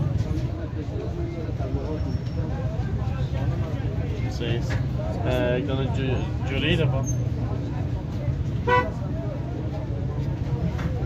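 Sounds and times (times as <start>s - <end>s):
street traffic rumble: 0.0s - 11.0s
vehicle horn toot: 8.6s - 9.0s.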